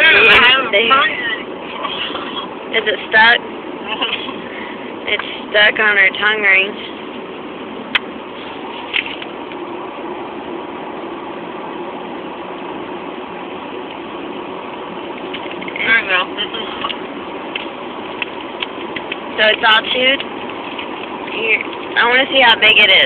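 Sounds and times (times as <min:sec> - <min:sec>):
car engine hum inside cabin: 0:00.0 - 0:23.0.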